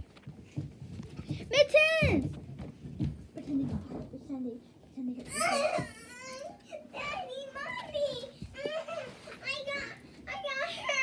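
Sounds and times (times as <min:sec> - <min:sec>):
young child making play sounds: 0:05.0 - 0:11.0.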